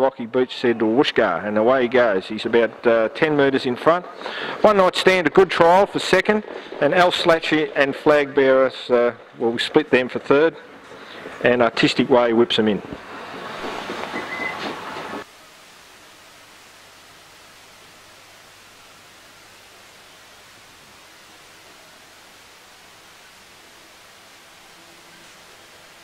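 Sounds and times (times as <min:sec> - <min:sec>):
faint hiss: 0:00.0 - 0:26.0.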